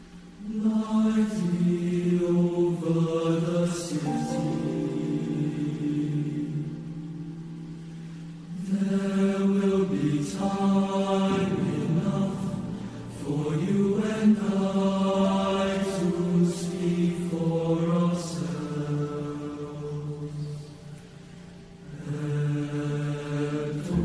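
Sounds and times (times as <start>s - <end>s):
boys' choir singing: 0.4s - 7.3s, 8.5s - 20.9s, 21.7s - 24.0s.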